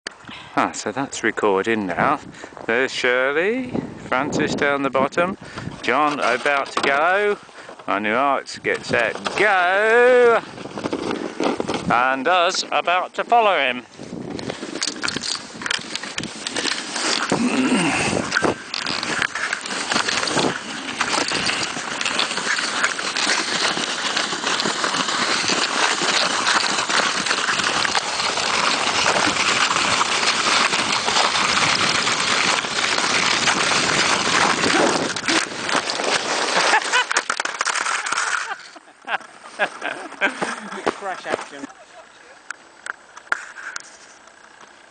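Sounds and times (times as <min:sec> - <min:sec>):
sledge tumble: 0:01.8 - 0:42.2
sledge runners scraping snow: 0:01.8 - 0:42.4.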